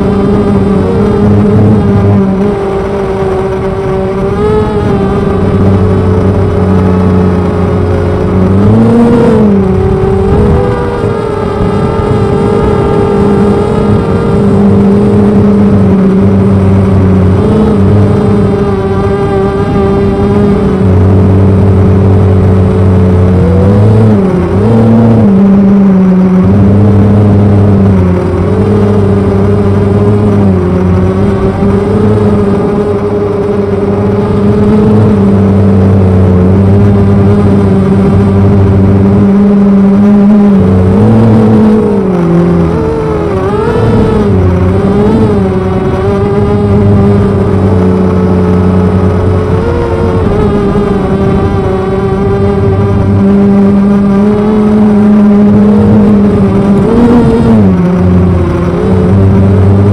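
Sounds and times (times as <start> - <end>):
drone motors whining: 0.0 - 59.9.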